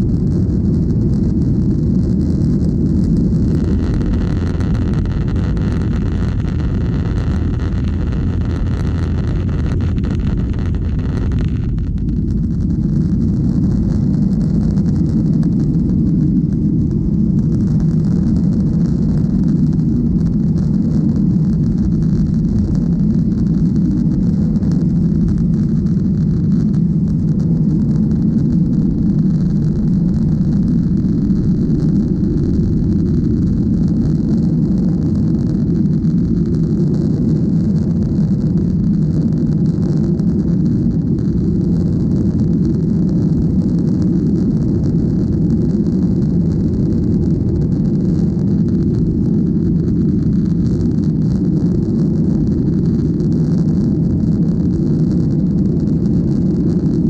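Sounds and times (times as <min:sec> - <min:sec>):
jet engine deep rumble: 0:00.0 - 0:57.0
rushing air in cabin: 0:01.3 - 0:17.8.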